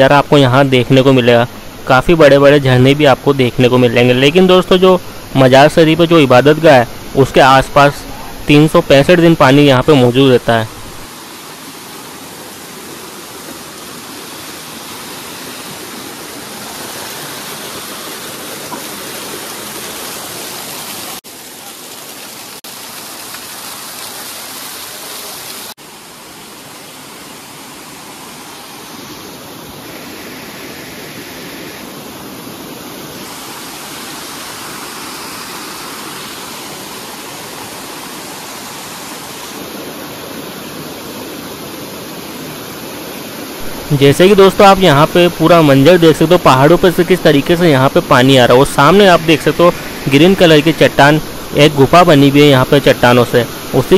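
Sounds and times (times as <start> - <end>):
waterfall rushing: 0.0 - 53.9.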